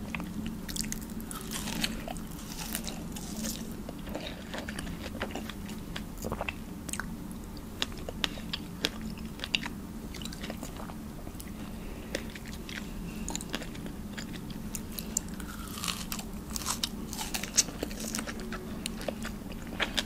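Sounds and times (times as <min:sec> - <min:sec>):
wet chewing of fruit: 0:00.0 - 0:07.1, 0:07.8 - 0:20.0.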